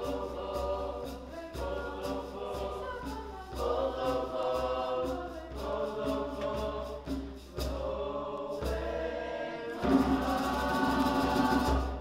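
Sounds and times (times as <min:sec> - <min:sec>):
chorus singing in close harmony: 0:00.0 - 0:12.0.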